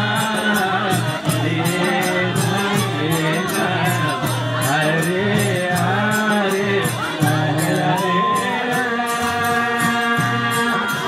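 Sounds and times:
hand percussion beat: 0:00.0 - 0:11.0
voices singing devotional chant: 0:00.0 - 0:11.0.

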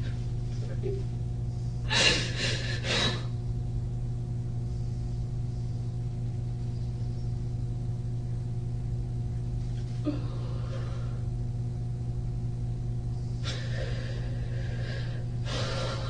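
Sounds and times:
low electrical hum: 0:00.0 - 0:16.0
woman crying with gasping breaths: 0:01.9 - 0:03.3.

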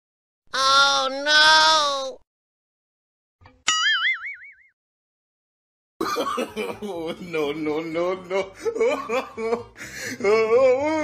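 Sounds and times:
cartoon boing twang: 0:03.6 - 0:04.7.

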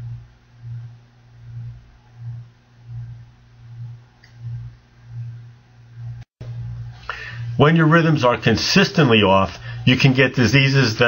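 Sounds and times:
pulsing low hum: 0:00.0 - 0:07.6.

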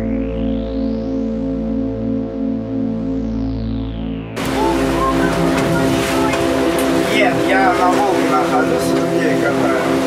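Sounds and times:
motorboat engine: 0:00.0 - 0:10.0
indistinct voices: 0:04.4 - 0:10.0
rushing wind and water: 0:04.4 - 0:10.0.

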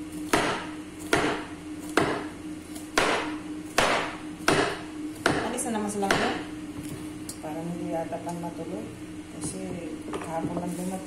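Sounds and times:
knife chopping on cutting board: 0:00.2 - 0:07.0.

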